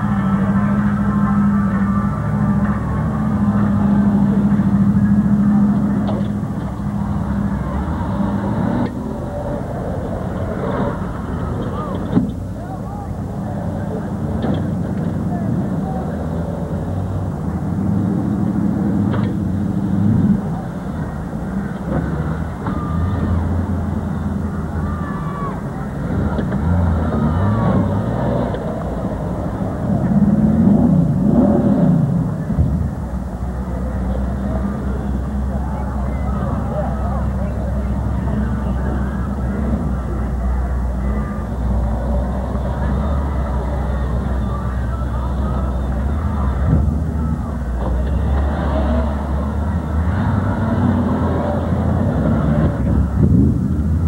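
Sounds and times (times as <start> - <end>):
indistinct voices: 0.0 - 54.0
truck engine revving: 0.0 - 54.0.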